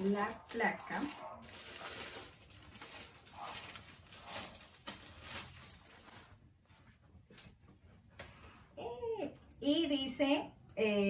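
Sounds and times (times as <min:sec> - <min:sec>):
plastic sleeve crinkling: 0:00.0 - 0:06.5.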